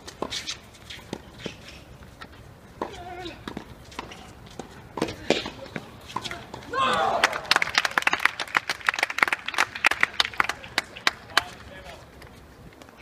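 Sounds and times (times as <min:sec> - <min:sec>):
short shout: 0:06.7 - 0:07.5
scattered applause: 0:06.8 - 0:11.8.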